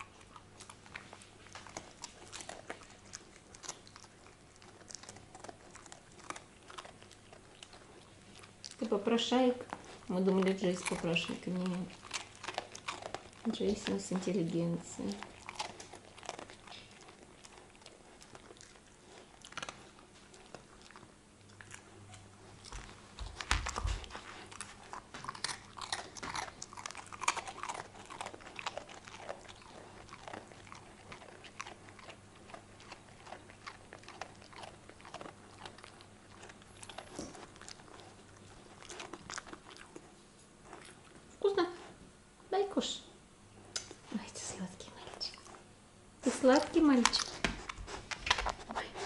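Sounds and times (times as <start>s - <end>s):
puppy chewing and crunching: 0.0s - 43.0s, 43.6s - 49.0s.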